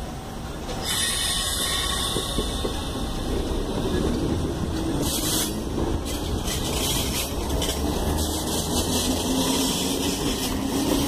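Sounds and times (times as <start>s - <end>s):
train rumbling on rails: 0.0s - 11.0s
loud high-pitched hiss: 0.8s - 4.0s.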